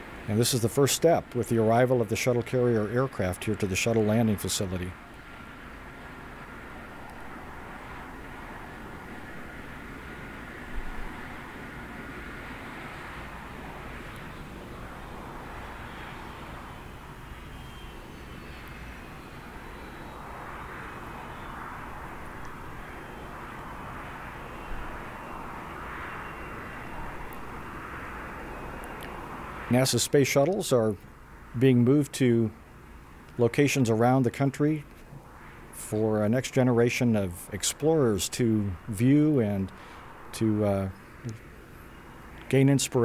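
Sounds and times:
distant jet engines rushing: 0.0s - 43.0s.

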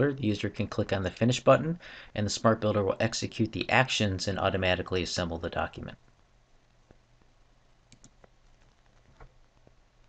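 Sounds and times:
faint low hum: 0.0s - 10.0s
computer mouse click: 7.9s - 8.3s.

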